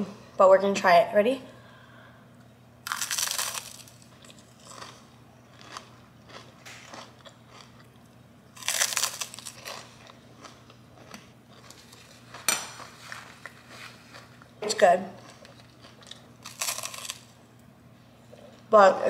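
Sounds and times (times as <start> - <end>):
biting crunchy rice cake: 2.8 - 13.6, 15.2 - 17.3
chewing crunches: 2.8 - 14.5, 15.1 - 17.4.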